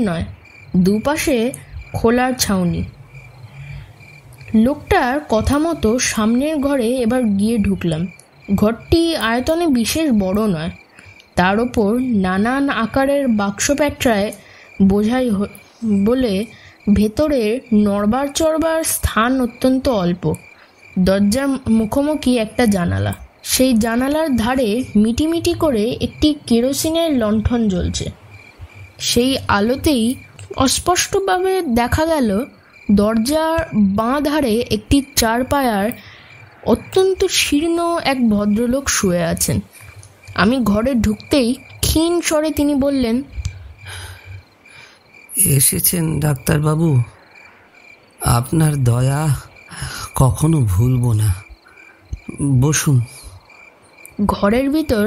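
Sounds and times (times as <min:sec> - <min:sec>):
crickets chirping: 0:00.0 - 0:55.0.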